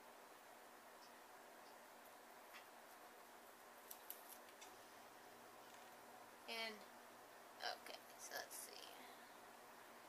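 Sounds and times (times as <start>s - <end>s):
faint scissors snipping: 3.8s - 4.7s.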